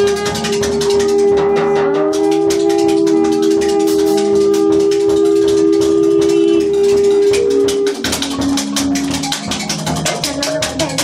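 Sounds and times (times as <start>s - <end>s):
saxophone sustained notes: 0.0s - 9.2s
rapid drum percussion: 0.0s - 11.0s.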